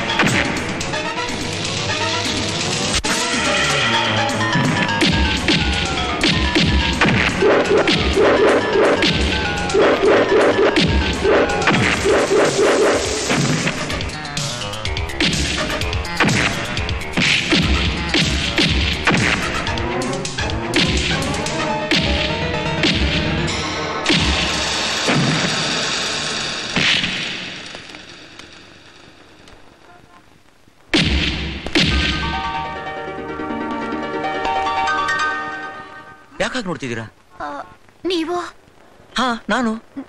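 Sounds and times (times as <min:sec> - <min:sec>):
fast action music: 0:00.0 - 0:28.2
soundtrack hiss: 0:00.0 - 0:40.0
punch and kick whacks: 0:00.2 - 0:00.6, 0:10.8 - 0:14.0, 0:16.2 - 0:19.6, 0:20.8 - 0:21.2, 0:21.9 - 0:23.3, 0:24.1 - 0:25.6, 0:26.8 - 0:27.4, 0:31.0 - 0:32.3.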